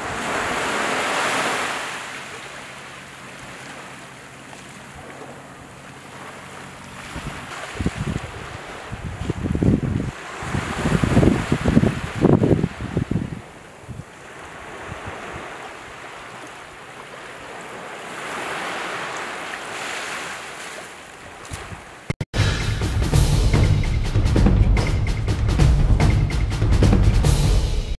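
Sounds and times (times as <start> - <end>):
sea washing at shore: 0.0 - 22.2
wind: 0.0 - 22.2.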